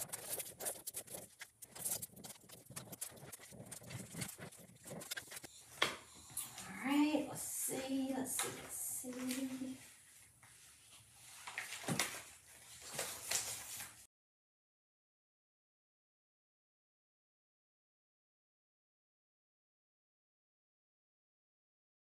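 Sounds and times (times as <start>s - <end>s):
transfer sheet rustling: 0.0s - 5.9s, 7.7s - 14.1s.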